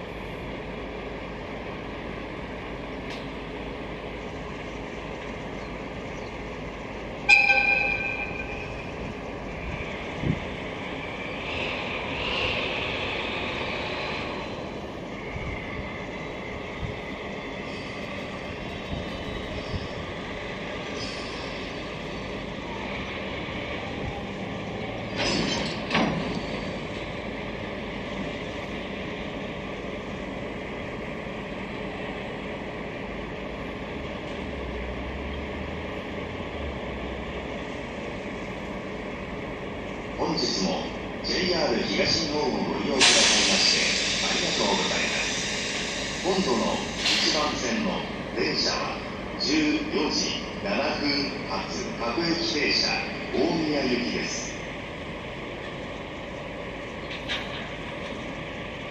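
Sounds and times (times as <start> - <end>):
wagons coupling clank: 25.1 - 26.8.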